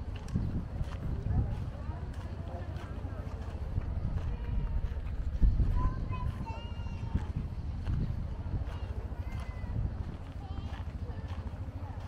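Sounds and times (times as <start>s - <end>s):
footsteps on dirt path: 0.0s - 12.0s
people chatting: 0.0s - 12.0s.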